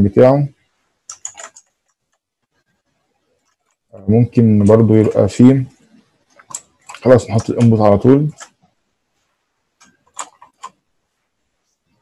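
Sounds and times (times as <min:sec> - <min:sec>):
computer mouse clicks: 0:01.1 - 0:02.2, 0:05.9 - 0:08.6, 0:09.8 - 0:10.8.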